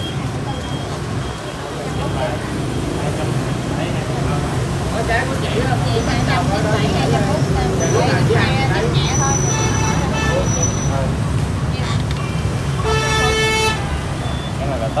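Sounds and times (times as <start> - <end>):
traffic engine rumble: 0.0 - 15.0
vehicle horn honking: 9.2 - 11.0, 12.8 - 14.2.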